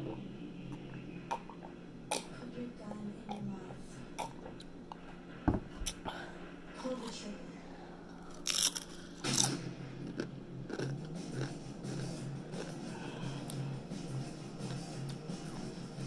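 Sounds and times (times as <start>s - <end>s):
pulsing background music: 0.0s - 16.0s
soft chewing: 8.1s - 15.8s
chips crunching: 8.2s - 13.6s.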